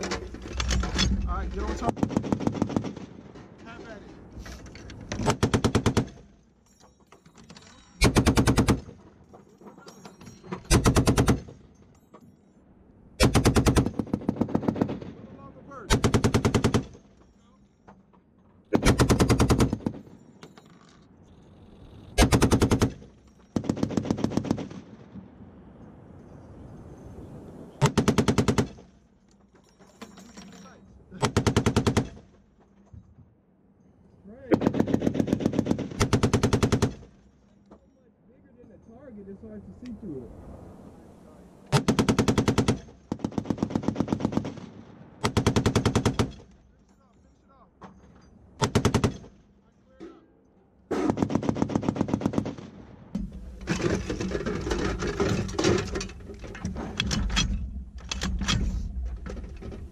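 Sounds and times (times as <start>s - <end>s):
machine gun firing bursts: 1.8s - 3.2s, 5.2s - 6.2s, 8.0s - 9.0s, 10.7s - 11.5s, 13.2s - 15.2s, 15.9s - 17.0s, 18.8s - 20.0s, 22.2s - 24.9s, 27.8s - 28.8s, 31.2s - 32.2s, 34.5s - 37.1s, 41.7s - 46.4s, 48.6s - 49.3s, 51.0s - 52.7s.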